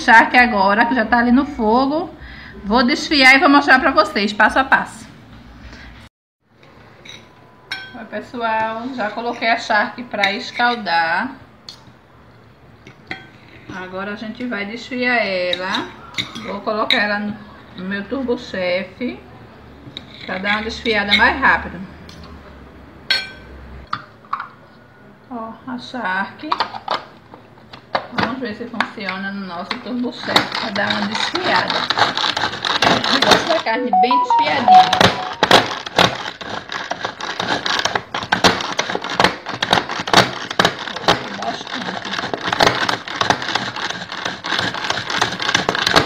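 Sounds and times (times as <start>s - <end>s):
cutlery clinking in glass bowl: 7.0s - 8.0s, 15.6s - 17.1s, 23.1s - 23.5s.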